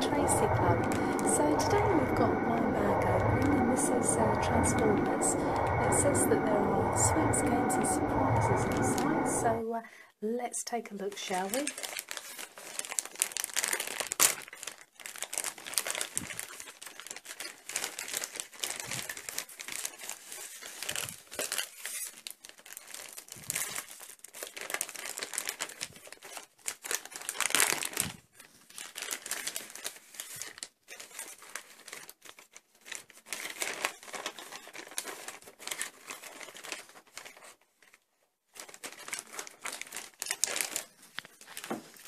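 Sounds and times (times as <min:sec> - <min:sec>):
plastic bag crinkling and tearing: 0:11.1 - 0:42.0.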